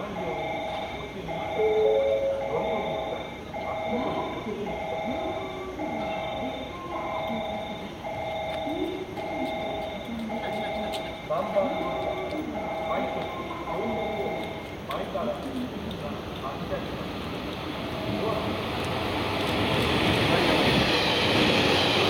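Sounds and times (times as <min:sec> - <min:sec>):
railway two-tone warning chime: 0:00.0 - 0:16.0, 0:17.8 - 0:22.0.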